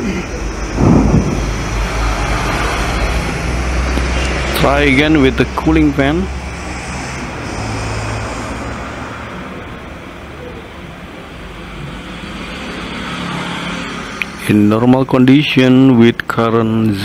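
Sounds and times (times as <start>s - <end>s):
faint hum: 0.0s - 4.0s
low background rumble: 0.5s - 3.9s.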